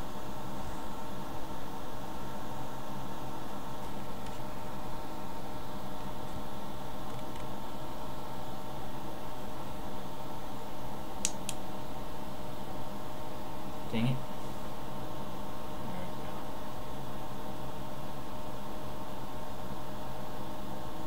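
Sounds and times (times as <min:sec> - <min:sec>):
machine-like hum: 0:00.0 - 0:21.0.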